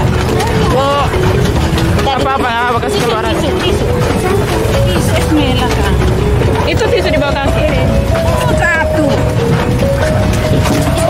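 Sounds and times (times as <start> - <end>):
vehicle engine and tyres rumbling: 0.0 - 11.0.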